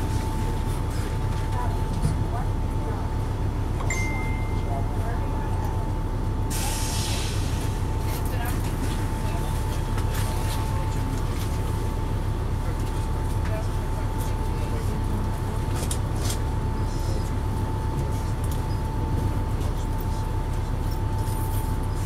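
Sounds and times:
bus diesel engine idling: 0:00.0 - 0:22.0
air brake hiss: 0:06.5 - 0:07.5.

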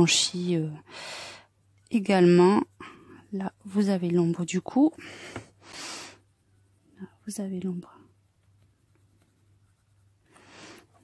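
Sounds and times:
coloured pencil scratching on paper: 0:01.8 - 0:05.1, 0:06.2 - 0:11.0.

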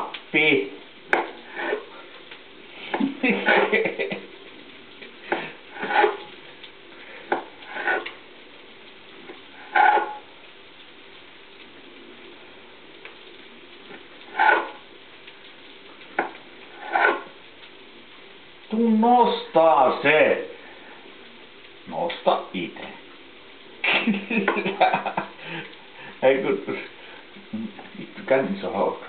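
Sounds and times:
frying pan sizzle: 0:00.0 - 0:29.0.

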